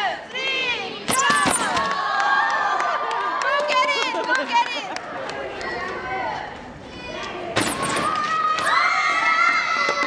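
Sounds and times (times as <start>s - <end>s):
children shouting and cheering: 0.4s - 4.7s, 5.3s - 10.0s.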